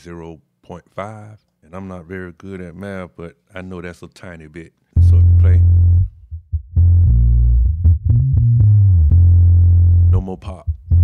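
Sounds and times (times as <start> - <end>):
looped bass line: 5.0 - 11.0.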